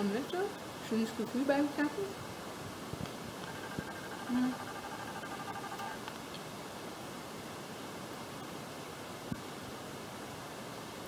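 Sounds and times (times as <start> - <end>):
steady background hiss: 0.0 - 11.0
faint pitched tone: 3.4 - 6.0.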